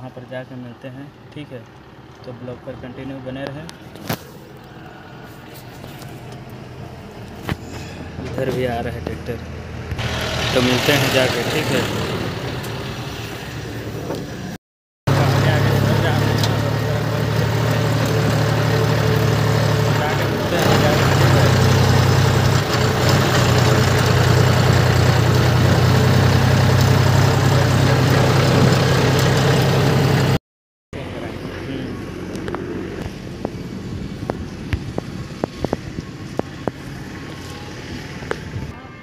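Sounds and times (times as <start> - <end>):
tractor diesel engine droning: 1.7 - 30.4, 31.0 - 39.0.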